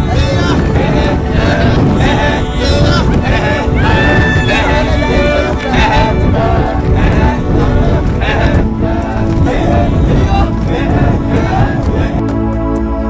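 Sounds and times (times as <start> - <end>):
men chanting and singing: 0.0 - 13.0
wind rumbling on microphone: 0.0 - 13.0.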